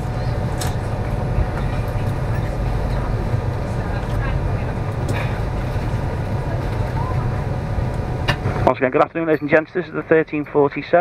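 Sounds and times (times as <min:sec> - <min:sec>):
train carriage rumble and hum: 0:00.0 - 0:11.0.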